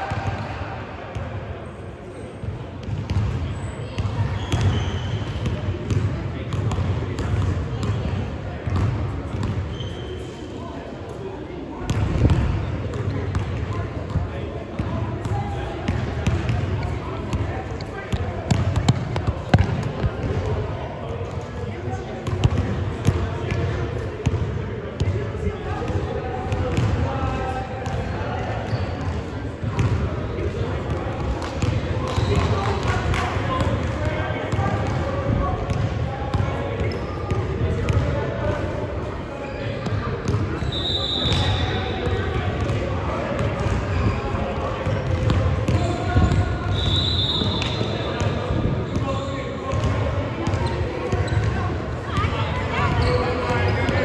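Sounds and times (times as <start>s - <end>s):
short high whistle blasts: 46.7s - 47.9s.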